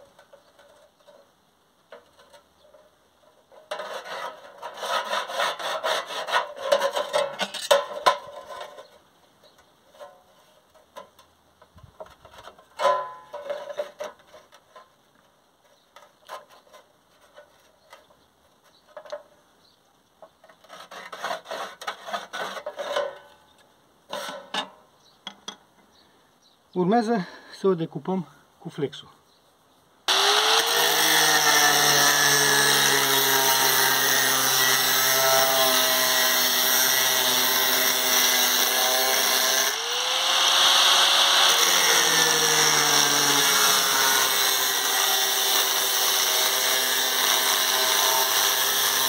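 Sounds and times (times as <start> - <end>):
pencil scratching on metal: 20.6 - 23.1.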